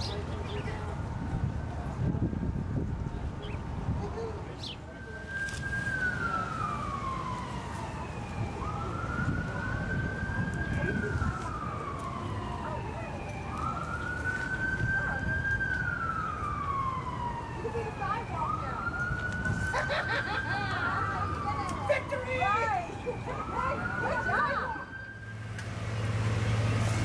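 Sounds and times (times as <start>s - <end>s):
emergency siren wailing: 4.8s - 27.0s.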